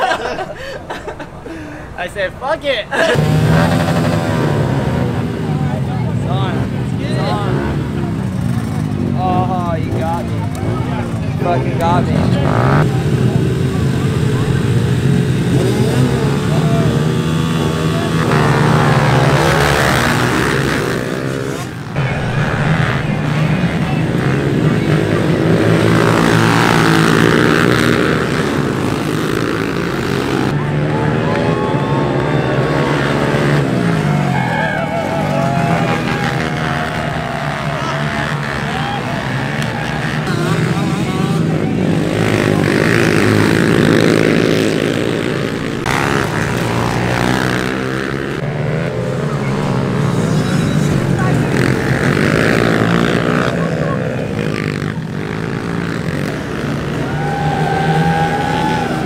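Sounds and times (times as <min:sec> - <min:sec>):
small motorbike engines revving: 0:00.0 - 0:59.0.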